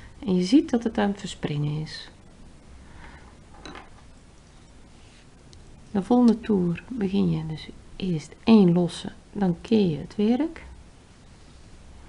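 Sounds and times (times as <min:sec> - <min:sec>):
faint yarn handling noise: 0:02.7 - 0:08.9.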